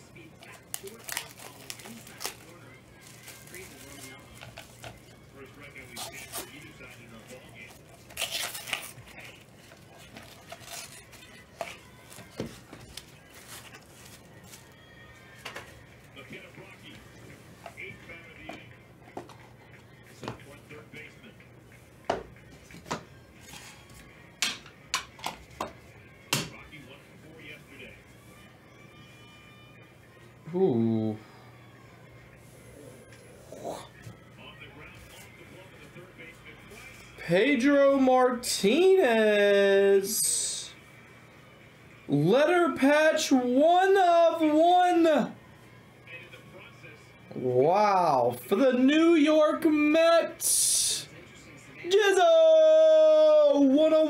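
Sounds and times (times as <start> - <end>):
plastic packaging rustling: 0.4 - 18.1.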